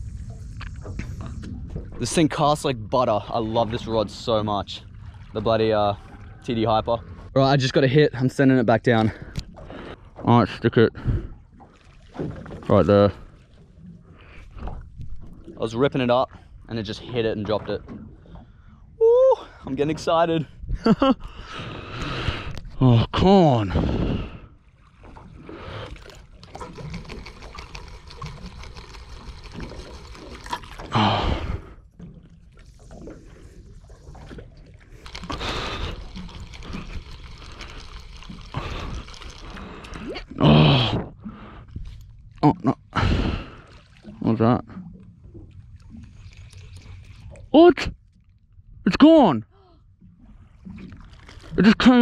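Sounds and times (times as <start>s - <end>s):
water sloshing around hull: 0.0s - 52.0s.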